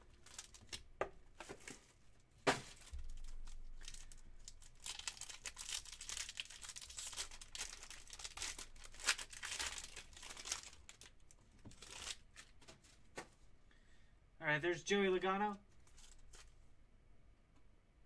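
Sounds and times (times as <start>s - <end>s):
foil wrapping crinkling and tearing: 0.0s - 0.9s, 2.6s - 12.6s, 15.8s - 16.5s.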